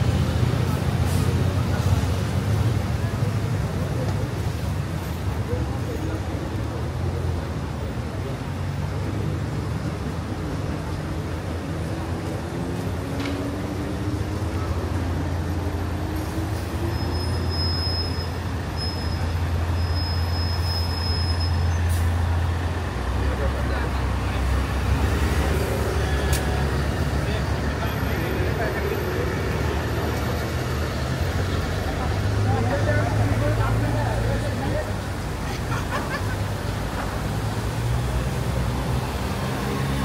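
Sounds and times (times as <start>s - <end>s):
bus engine hum: 0.0s - 40.0s
road noise: 0.0s - 40.0s.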